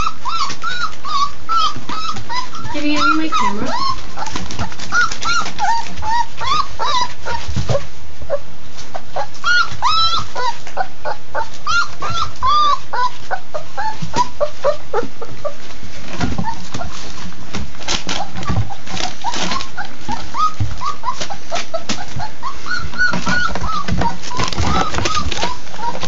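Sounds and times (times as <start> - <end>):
puppies eating wet food: 0.0 - 7.9, 8.8 - 26.0
puppies whimpering and whining: 0.0 - 26.0.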